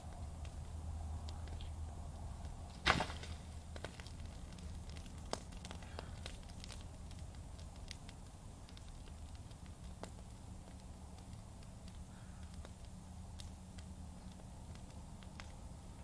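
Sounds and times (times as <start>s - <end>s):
fire crackling: 0.0s - 16.0s
sharp pops of fire: 2.4s - 16.0s.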